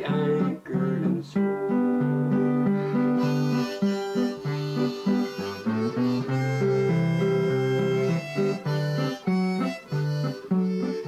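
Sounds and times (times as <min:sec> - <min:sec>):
acoustic guitar strumming: 0:00.0 - 0:11.0
harmonica playing melody: 0:00.0 - 0:11.0.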